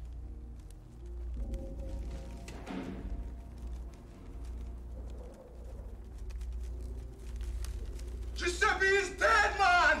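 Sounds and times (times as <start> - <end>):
bird cooing: 4.8 - 6.3.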